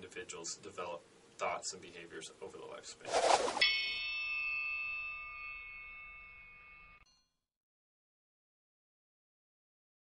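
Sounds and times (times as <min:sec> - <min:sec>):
bell-like chime ringing: 0:03.6 - 0:07.3.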